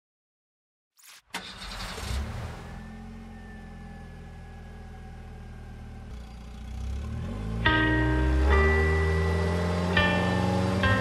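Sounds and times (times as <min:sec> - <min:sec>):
car engine starting and idling: 0:01.1 - 0:11.0.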